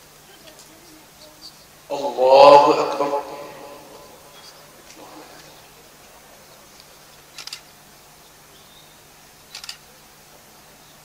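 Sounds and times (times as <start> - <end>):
faint steady hum: 0.0 - 11.0
rapid sharp clicks: 7.3 - 7.7, 9.5 - 9.9.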